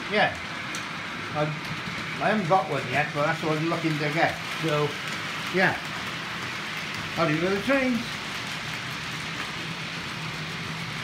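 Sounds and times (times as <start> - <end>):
model train wheels hissing on track: 0.0 - 11.0.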